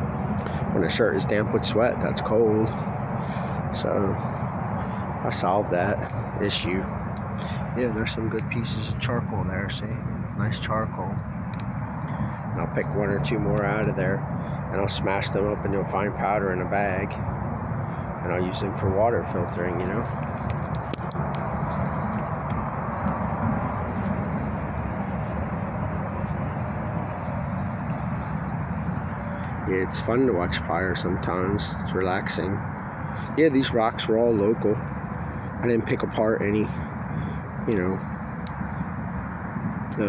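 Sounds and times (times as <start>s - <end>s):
campfire crackling: 0.0s - 40.0s
distant engine rumble: 0.0s - 40.0s
steady rushing noise: 0.0s - 40.0s.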